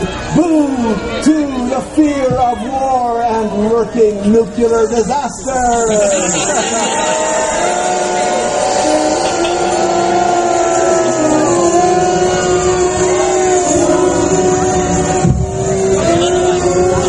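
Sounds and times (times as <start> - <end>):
droning notes: 5.3 - 17.0
wailing tones sliding: 5.4 - 17.0
low thump: 15.2 - 15.6.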